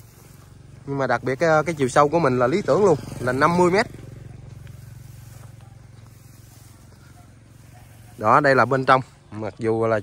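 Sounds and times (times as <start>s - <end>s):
distant vehicle engine hum: 0.0s - 10.0s.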